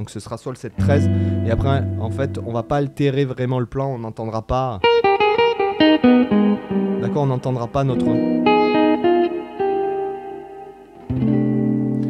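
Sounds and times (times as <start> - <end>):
electric guitar notes picked: 0.8 - 3.4, 4.8 - 12.0.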